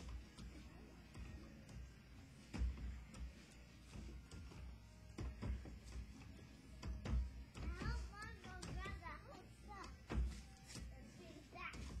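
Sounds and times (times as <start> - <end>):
child's high-pitched voice: 7.6 - 10.0.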